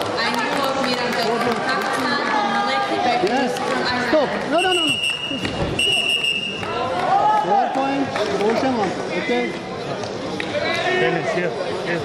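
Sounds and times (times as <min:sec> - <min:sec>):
long whistle blast: 0:04.6 - 0:06.7.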